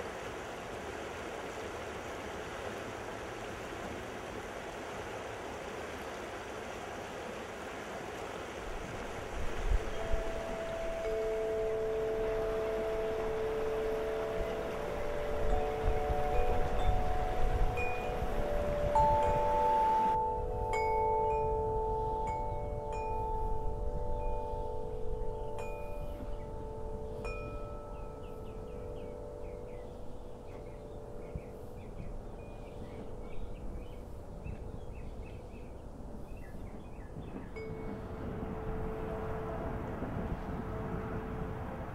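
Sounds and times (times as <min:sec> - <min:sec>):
river water rushing: 0:00.0 - 0:22.4
wind chime ringing: 0:09.6 - 0:35.5, 0:37.6 - 0:40.1.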